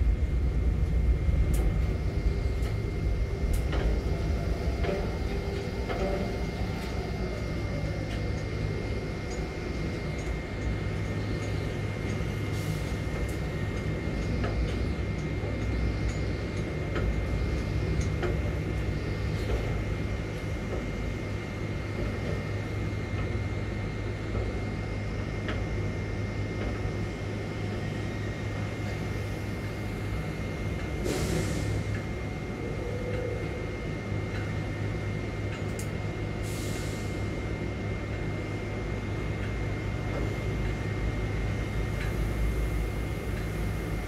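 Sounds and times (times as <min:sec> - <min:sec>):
crane machinery droning: 0:00.0 - 0:44.0
thin steady whine: 0:00.0 - 0:44.0.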